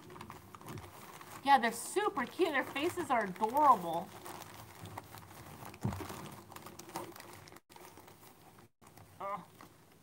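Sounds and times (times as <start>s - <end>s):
rustling: 0.0s - 10.0s
soft thump: 5.8s - 6.1s.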